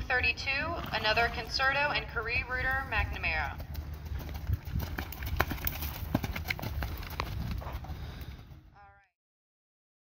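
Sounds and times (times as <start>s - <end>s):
hoofbeats on sand and gravel: 0.5s - 8.7s.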